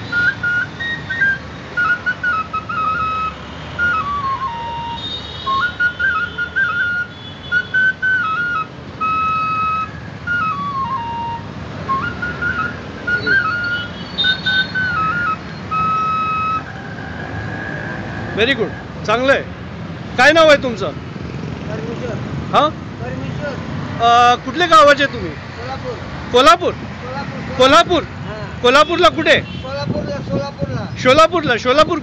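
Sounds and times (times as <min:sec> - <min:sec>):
flute melody: 0:00.0 - 0:18.9
street traffic hum: 0:00.0 - 0:32.0.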